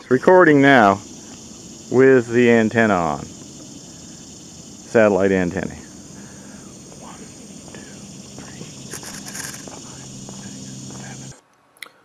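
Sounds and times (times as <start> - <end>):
faint high-pitched hum: 0.2 - 12.0.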